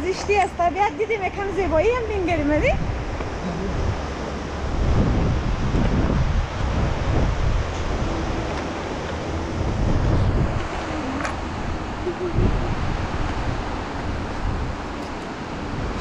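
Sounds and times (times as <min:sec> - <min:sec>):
wind blowing on microphone: 0:00.0 - 0:16.0.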